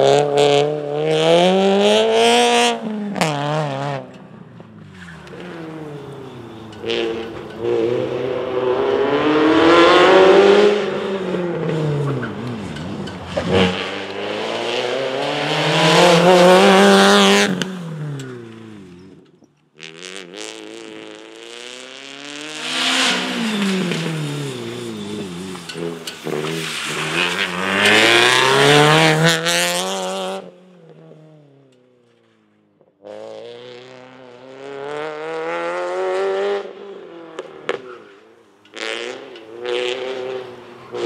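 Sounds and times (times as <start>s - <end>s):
rally car engine revving: 0.0s - 31.5s, 33.0s - 41.0s.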